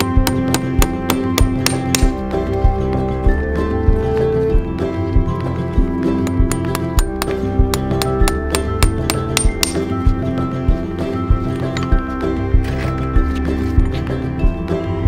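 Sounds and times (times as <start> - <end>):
hammer tapping horseshoe nails: 0.0 - 2.2, 6.2 - 9.9
background music with beat: 0.0 - 15.0.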